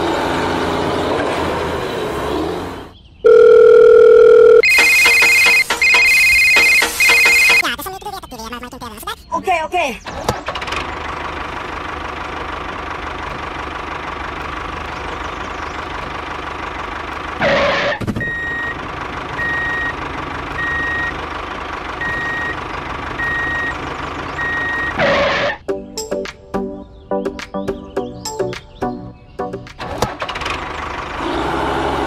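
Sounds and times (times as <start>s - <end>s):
repeating high beep: 3.3s - 7.6s
engine running: 10.0s - 25.7s, 29.5s - 32.0s.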